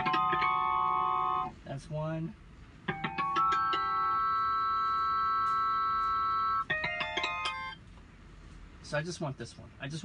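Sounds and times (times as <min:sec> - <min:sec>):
keyboard chime-like guitar harmonics: 0:02.9 - 0:07.8.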